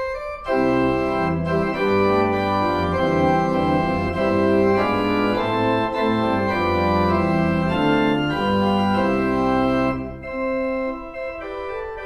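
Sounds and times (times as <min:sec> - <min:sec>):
organ playing chords: 0:00.0 - 0:12.0.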